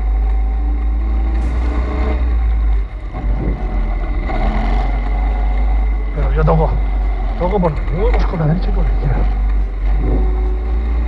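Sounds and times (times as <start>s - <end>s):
motorbike engine running: 0.0s - 11.0s
wind buffeting microphone: 1.4s - 6.1s.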